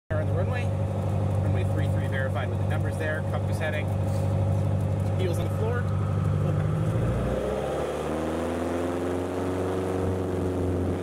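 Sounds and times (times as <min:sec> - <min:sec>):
airplane engine droning: 0:00.1 - 0:11.0.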